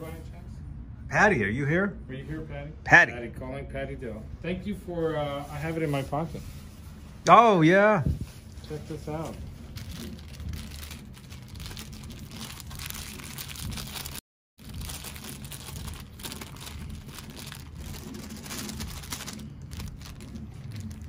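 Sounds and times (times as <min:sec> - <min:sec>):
plastic bag crinkling: 0:08.8 - 0:21.0.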